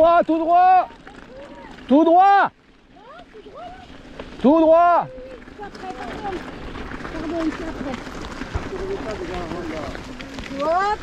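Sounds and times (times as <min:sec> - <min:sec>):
bike tyres rolling on gravel: 0:00.0 - 0:11.0
faint voices: 0:00.0 - 0:11.0.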